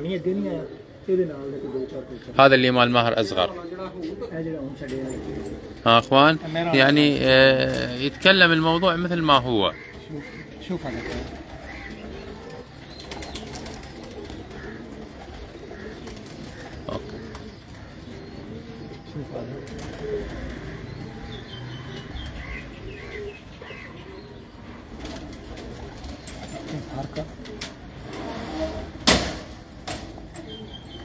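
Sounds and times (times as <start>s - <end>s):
pigeons cooing: 0.0s - 31.0s.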